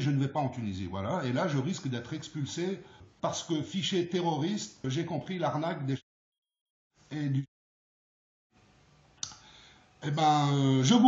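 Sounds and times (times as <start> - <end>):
faint room hiss: 0.0 - 6.0, 7.0 - 7.5, 8.5 - 11.0.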